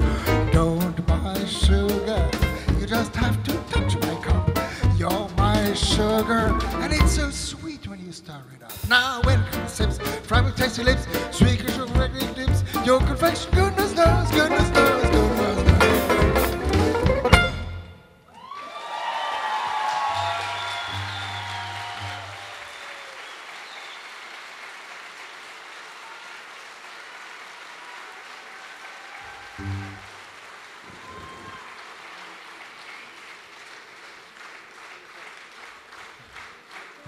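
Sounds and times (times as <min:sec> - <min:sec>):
audience applauding: 0:18.3 - 0:37.0.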